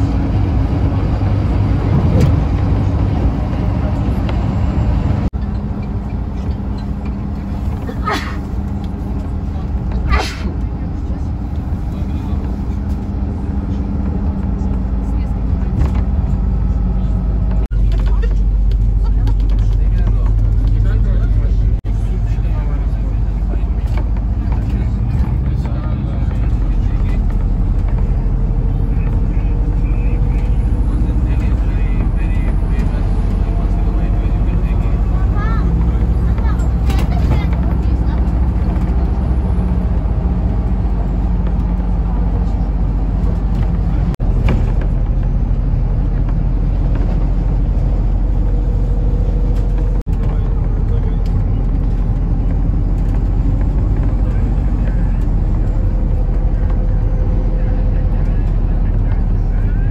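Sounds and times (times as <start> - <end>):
bus engine rumble: 0.0 - 59.9
road noise: 0.0 - 59.9
faint voices: 6.2 - 59.9.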